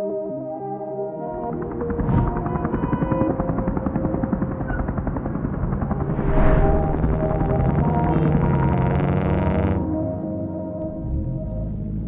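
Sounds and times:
helicopter rotor blades chopping: 1.4 - 9.2
ambient synth tones: 5.8 - 10.4.

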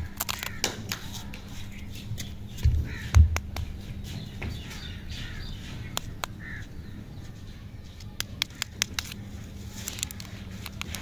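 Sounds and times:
wrapper crinkling: 8.5 - 11.0.

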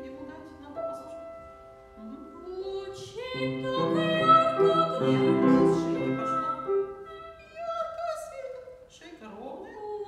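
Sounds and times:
piano chords: 0.0 - 7.5
boy singing classical piece: 0.0 - 8.0.

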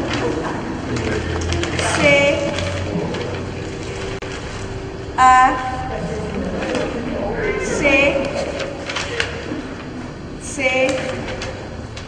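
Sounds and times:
low room hum: 0.0 - 12.0
paper ballots being handled: 8.3 - 10.0.

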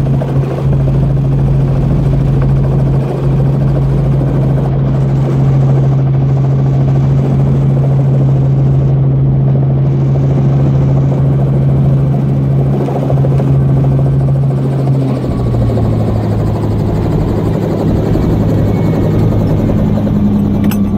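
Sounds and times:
helicopter engine and rotor hum: 0.0 - 20.9.

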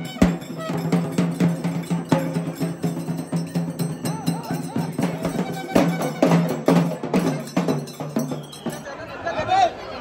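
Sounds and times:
rhythmic percussion strikes: 0.0 - 9.1.

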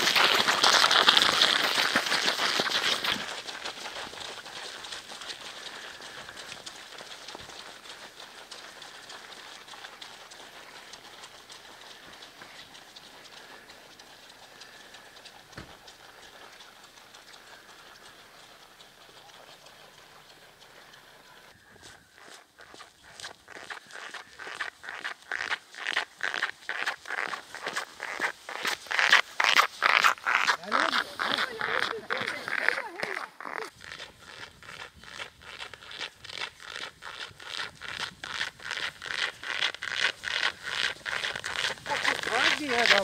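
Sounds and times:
footsteps crunching on snow: 0.0 - 16.7, 21.3 - 43.0.

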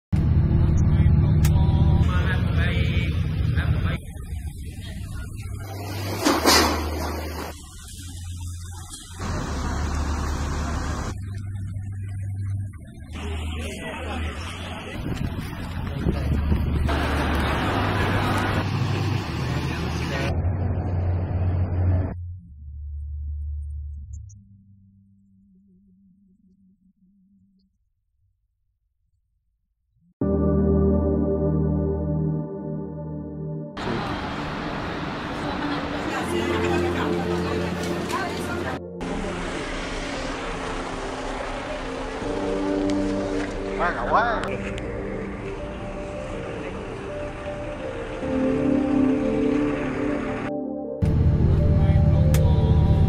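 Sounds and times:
buses idling: 0.2 - 22.1, 33.8 - 53.0
road traffic: 0.2 - 22.2, 33.8 - 53.0
crowd walking and talking: 0.6 - 20.4, 33.8 - 50.2
steady low rumble: 30.2 - 53.0.

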